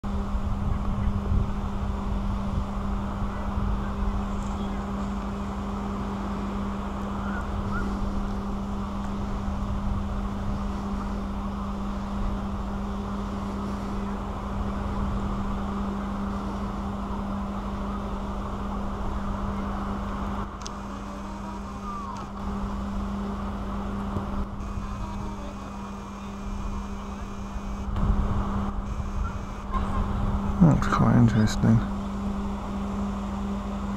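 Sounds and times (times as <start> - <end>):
wind buffeting microphone: 0.0 - 20.4, 27.9 - 30.7
low mechanical hum: 0.0 - 33.9
outdoor noise: 0.0 - 33.9.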